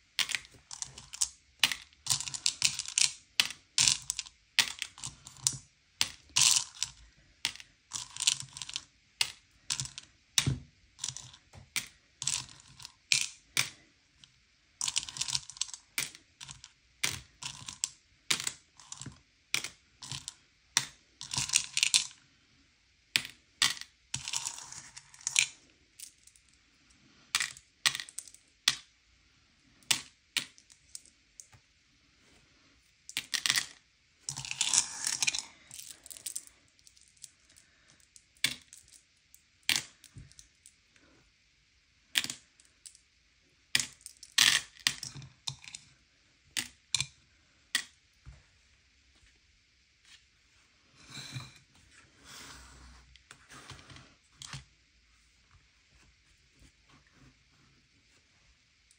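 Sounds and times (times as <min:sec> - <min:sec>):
candies clicking into plastic cups: 0:00.2 - 0:13.8, 0:14.8 - 0:22.2, 0:27.4 - 0:28.9, 0:29.8 - 0:31.6, 0:33.1 - 0:40.6, 0:42.1 - 0:43.0, 0:43.8 - 0:45.9, 0:46.6 - 0:47.1, 0:47.8 - 0:48.0.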